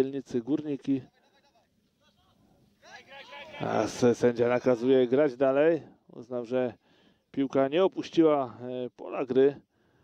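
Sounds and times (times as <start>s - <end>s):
man's voice: 0.0s - 6.8s, 7.4s - 9.7s.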